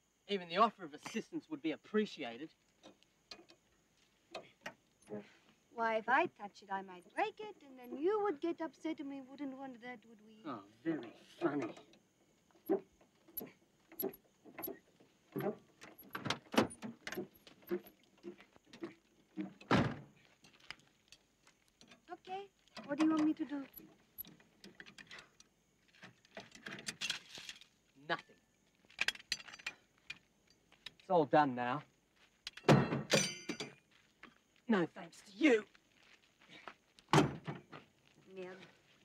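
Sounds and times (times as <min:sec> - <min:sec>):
metal clinks of car jack: 0:32.5 - 0:33.8.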